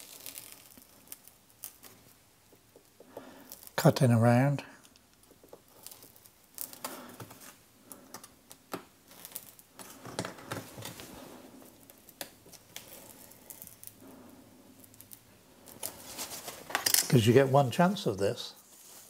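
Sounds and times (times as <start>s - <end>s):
sheet rustling: 15.8s - 16.8s, 18.6s - 19.0s.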